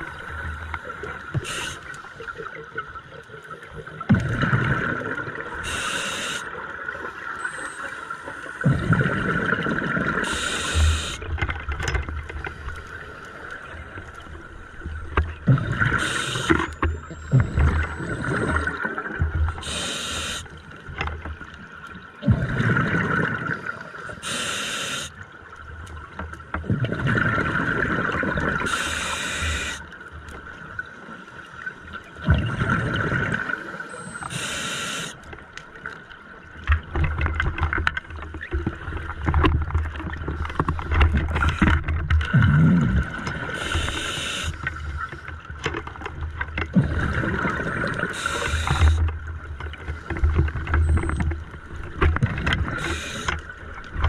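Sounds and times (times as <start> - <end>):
diver breathing through regulator: 5.6 - 6.5, 10.2 - 11.2, 15.9 - 16.7, 19.6 - 20.5, 24.2 - 25.1, 28.7 - 29.8, 34.1 - 35.2, 43.5 - 44.7, 48.0 - 49.0, 52.7 - 53.4.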